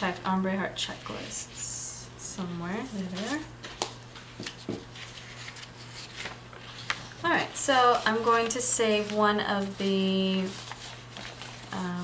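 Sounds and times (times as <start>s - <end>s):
steady low hum: 0.0s - 12.0s
paper sticker sheets rustling: 2.8s - 12.0s.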